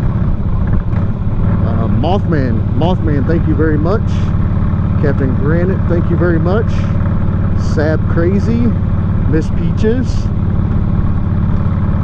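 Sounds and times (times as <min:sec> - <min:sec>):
motorcycle engine rumbling: 0:00.0 - 0:12.0.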